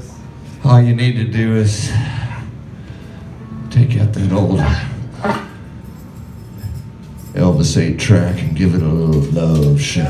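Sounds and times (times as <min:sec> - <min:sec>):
club room noise: 0:00.0 - 0:10.0
low amplifier hum: 0:00.0 - 0:10.0.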